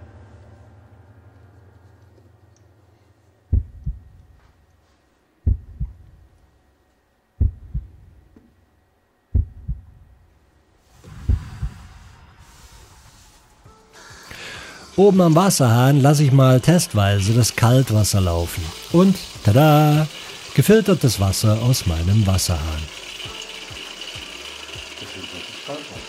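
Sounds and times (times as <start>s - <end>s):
heartbeat double thumps: 3.5s - 4.4s, 5.4s - 6.3s, 7.4s - 8.3s, 9.3s - 10.2s, 11.0s - 12.0s
hiss: 10.9s - 16.3s.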